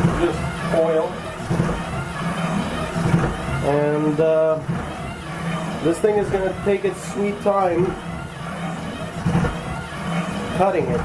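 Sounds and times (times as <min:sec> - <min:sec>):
motor hum: 0:00.0 - 0:11.0.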